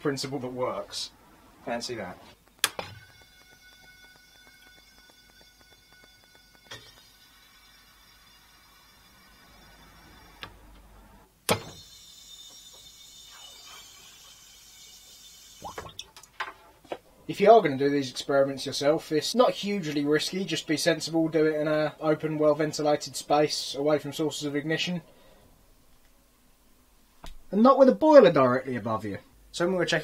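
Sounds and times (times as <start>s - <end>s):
faint steady hum: 0.0s - 30.0s.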